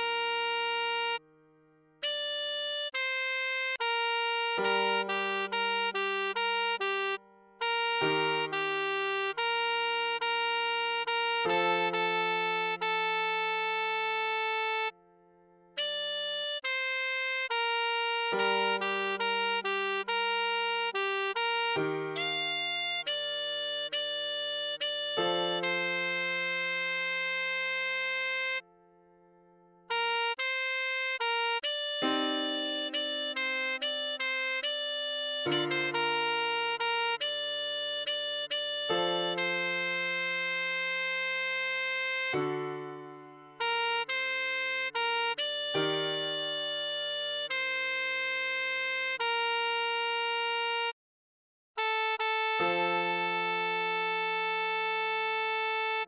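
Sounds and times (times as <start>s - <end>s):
saxophone long steady note: 0.0s - 1.3s, 2.0s - 15.0s, 15.7s - 28.7s, 29.8s - 50.9s, 51.8s - 56.0s
tenor saxophone long note: 29.9s - 50.9s.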